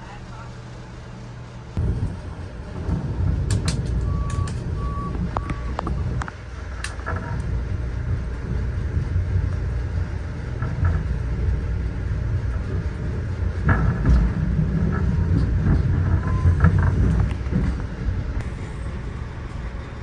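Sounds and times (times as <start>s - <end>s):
train low rumble: 0.0s - 20.0s
train car creaks and knocks: 1.8s - 20.0s.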